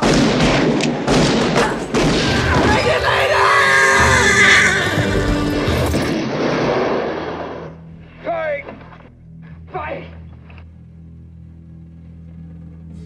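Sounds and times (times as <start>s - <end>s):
film music and action din: 0.0s - 13.0s
horse whinnying: 3.3s - 5.5s.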